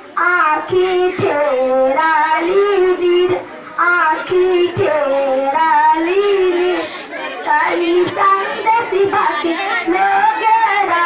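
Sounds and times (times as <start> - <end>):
girl singing into a microphone: 0.0 - 11.0.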